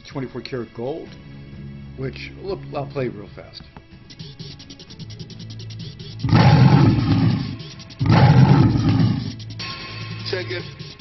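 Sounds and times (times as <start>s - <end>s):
background music with low drone: 0.0s - 11.0s
lion roar sound effect: 6.2s - 9.4s.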